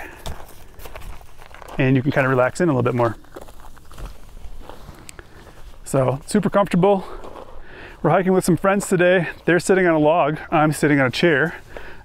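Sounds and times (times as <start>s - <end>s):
scuffs on dirt trail: 0.0s - 12.0s.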